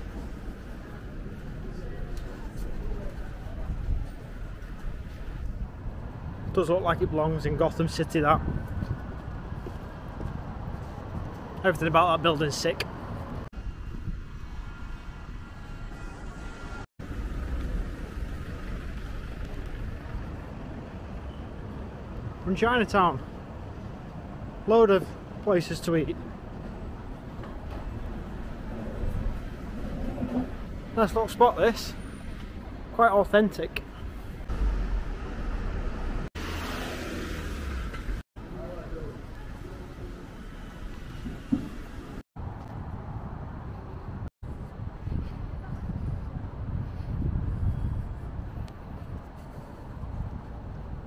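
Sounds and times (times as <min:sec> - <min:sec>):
traffic: 0:00.0 - 0:51.0
wind on microphone: 0:08.3 - 0:11.6, 0:12.9 - 0:15.6, 0:41.0 - 0:51.0.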